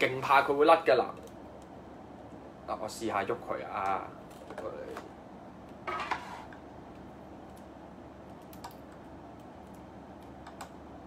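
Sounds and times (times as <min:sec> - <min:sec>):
low room noise: 0:00.0 - 0:11.0.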